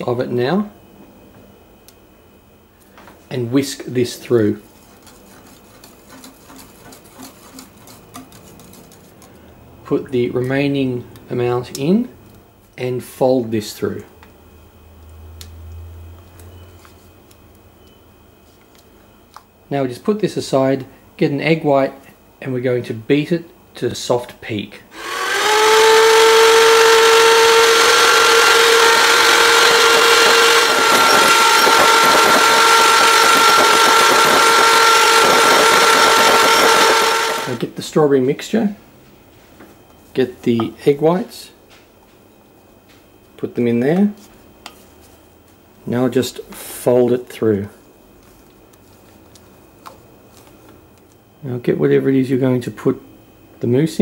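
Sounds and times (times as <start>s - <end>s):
electric hand mixer whine: 25.0s - 37.6s.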